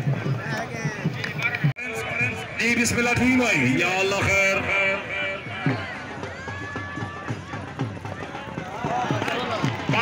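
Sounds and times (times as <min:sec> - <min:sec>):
crowd noise: 0:00.0 - 0:10.0
dhol drum beating: 0:00.0 - 0:10.0.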